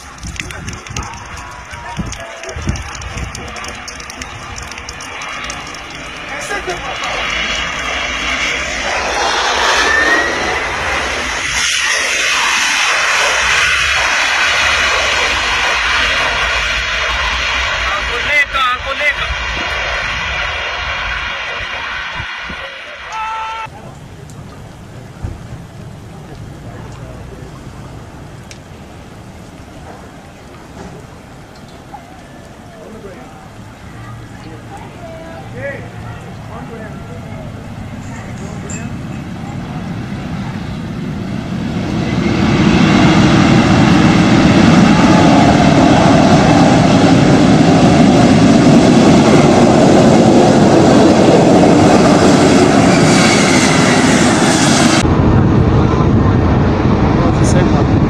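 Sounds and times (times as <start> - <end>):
low rumble: 0.0 - 31.5, 35.8 - 58.0
jet engines whining: 0.0 - 58.0.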